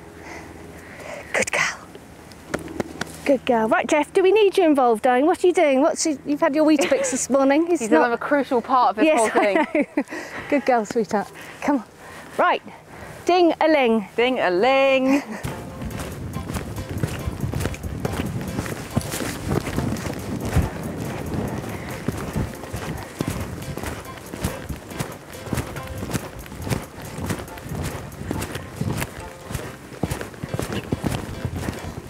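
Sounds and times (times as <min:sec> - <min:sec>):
muffled hoofbeats on sand: 0:13.7 - 0:32.0
background music: 0:15.4 - 0:32.0.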